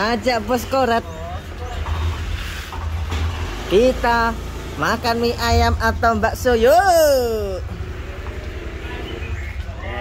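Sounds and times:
scooter engine rumbling: 0:00.0 - 0:10.0.

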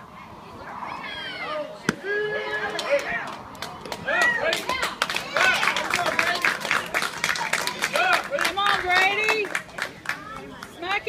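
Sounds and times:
spectators shouting: 0:00.8 - 0:08.3.

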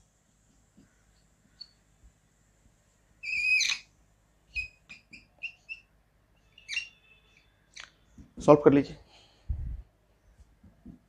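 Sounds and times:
marker squeaking on whiteboard: 0:00.4 - 0:01.9, 0:03.2 - 0:08.4.

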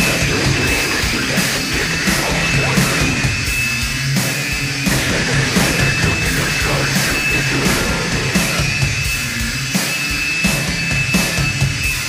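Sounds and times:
heavy beat with low bass: 0:00.0 - 0:12.0
industrial noise music: 0:00.0 - 0:12.0
steady high whine: 0:00.0 - 0:12.0.

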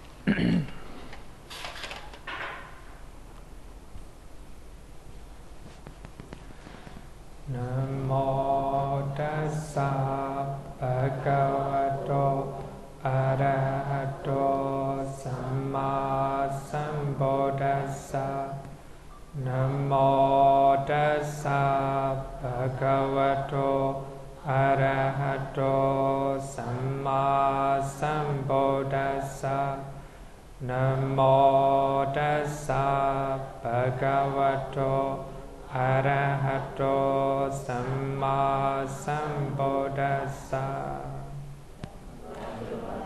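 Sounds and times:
breaths: 0:06.4 - 0:07.2, 0:18.7 - 0:19.1, 0:29.9 - 0:30.5
man chanting on held notes: 0:07.5 - 0:18.7, 0:19.4 - 0:30.0, 0:30.6 - 0:41.4.

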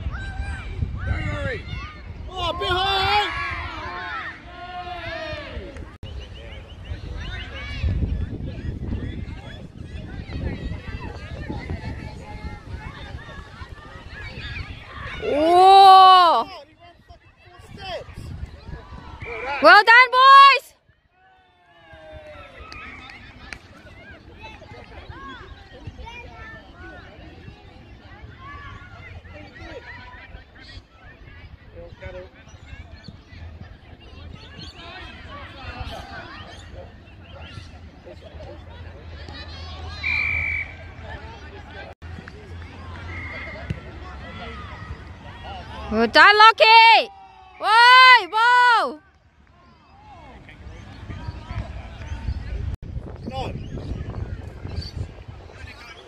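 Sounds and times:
distant crowd chatter: 0:00.0 - 0:56.0
whistle blasts: 0:39.9 - 0:40.9.

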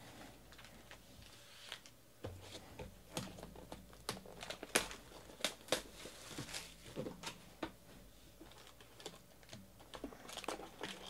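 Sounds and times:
crinkles and clicks: 0:00.4 - 0:02.0, 0:03.1 - 0:07.4, 0:08.4 - 0:11.0.

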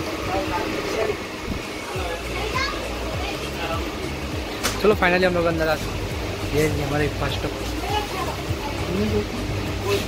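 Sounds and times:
people chattering: 0:00.0 - 0:05.5.

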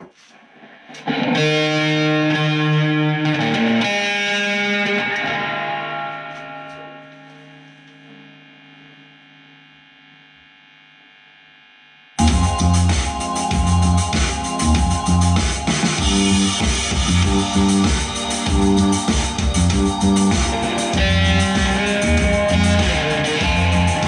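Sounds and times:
distorted electric guitar chords: 0:00.4 - 0:24.0.

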